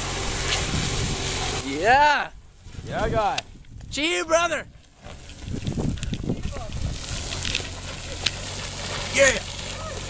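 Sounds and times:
car engine running: 5.0s - 10.0s.

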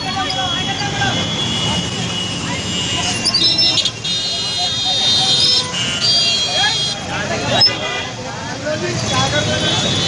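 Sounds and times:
motorbike and scooter engines: 0.0s - 10.0s
people's voices in street: 0.0s - 10.0s.

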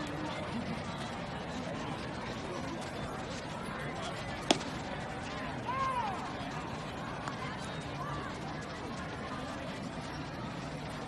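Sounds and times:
ballpark background noise: 0.0s - 11.0s
baseball bat crack: 4.5s - 5.0s.

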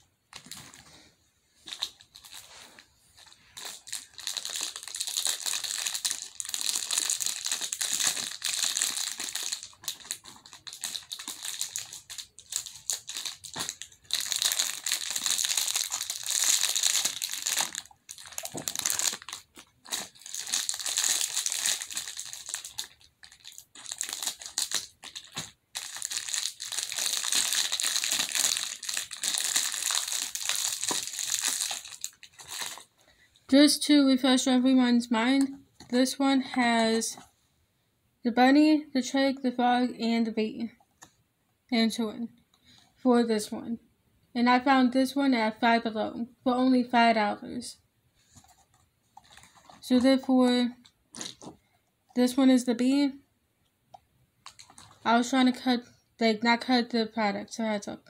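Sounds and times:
plastic packaging crinkling: 1.6s - 32.9s, 48.3s - 50.1s, 50.7s - 51.6s, 54.4s - 55.1s.

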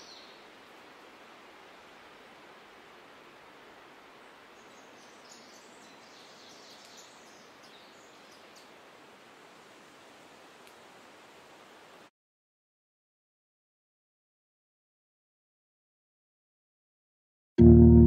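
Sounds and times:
steady hiss: 0.0s - 12.1s.

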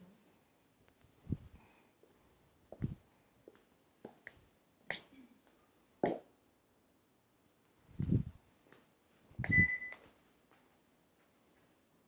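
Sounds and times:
short high beep: 9.4s - 10.0s.

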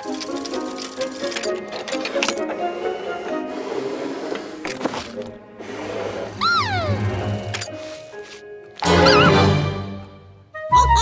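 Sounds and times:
light background music: 0.0s - 11.0s
cartoon creature call: 8.8s - 9.6s, 10.7s - 11.0s.

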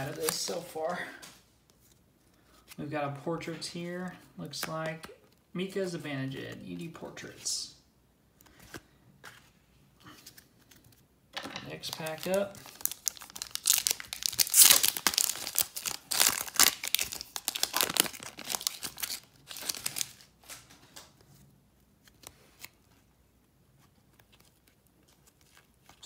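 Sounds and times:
wrapper tearing and crinkling: 11.8s - 20.8s.

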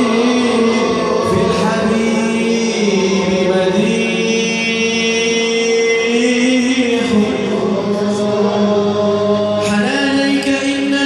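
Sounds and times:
devotional chanting: 0.0s - 11.0s.

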